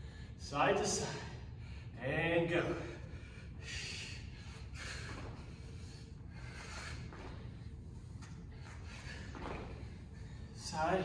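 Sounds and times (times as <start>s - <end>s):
man breathing hard: 0.0s - 10.8s
low hum of hall: 0.0s - 11.0s.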